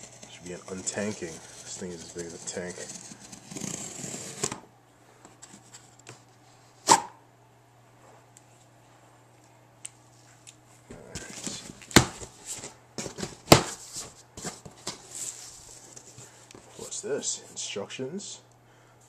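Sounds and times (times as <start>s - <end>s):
cardboard and foam rustling: 10.9s - 17.0s.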